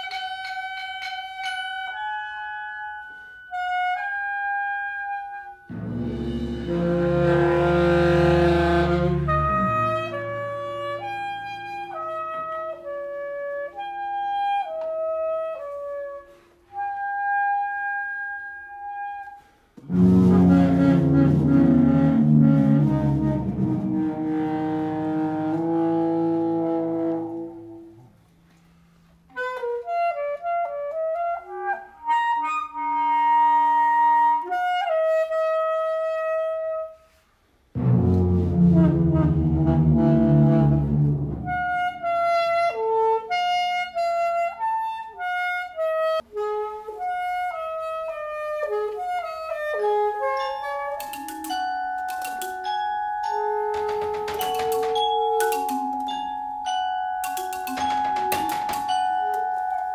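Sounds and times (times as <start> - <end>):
percussion ensemble: 5.7 - 11.9, 50.3 - 59.9.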